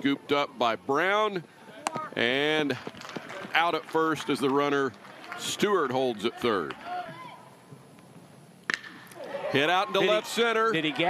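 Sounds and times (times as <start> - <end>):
low ballpark background: 0.0 - 11.0
metal bat striking baseball: 8.7 - 9.1.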